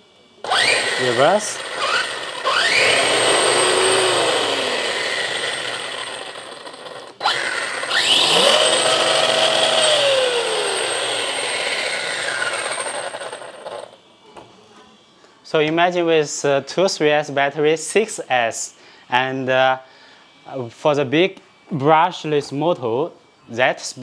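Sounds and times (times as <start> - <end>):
electric motor whine: 0.4 - 14.1.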